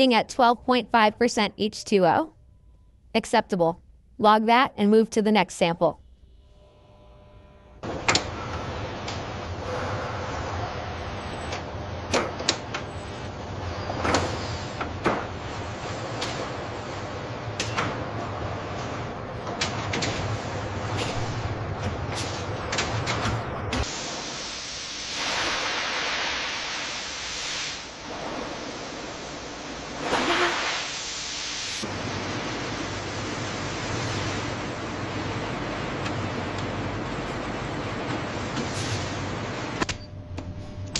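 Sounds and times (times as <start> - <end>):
machinery low hum: 4.9 - 25.7, 26.6 - 40.9
machinery clicks and clunks: 7.8 - 9.5, 11.2 - 23.9, 39.8 - 40.9.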